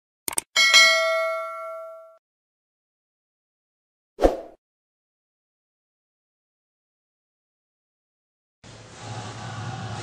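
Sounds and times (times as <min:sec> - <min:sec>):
notification bell ding: 0:00.6 - 0:02.2.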